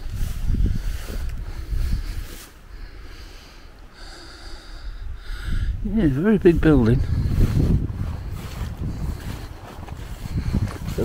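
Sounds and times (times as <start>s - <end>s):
wind buffeting microphone: 0.0s - 3.6s, 4.4s - 11.0s.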